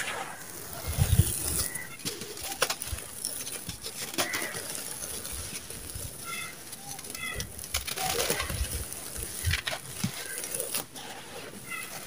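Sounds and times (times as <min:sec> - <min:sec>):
falling grains hiss: 0:00.0 - 0:02.0.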